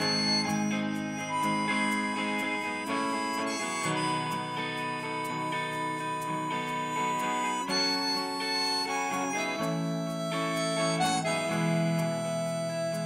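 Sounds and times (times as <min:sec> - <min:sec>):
electric guitars: 0:00.0 - 0:13.0
harmonica solo wailing notes: 0:00.0 - 0:13.0
ticking cymbals: 0:00.0 - 0:13.0.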